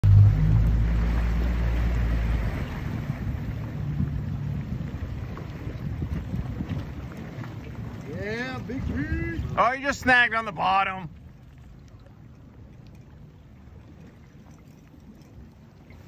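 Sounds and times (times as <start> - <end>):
outboard motor idling: 0.0 - 16.0
wind buffeting microphone: 0.0 - 16.0.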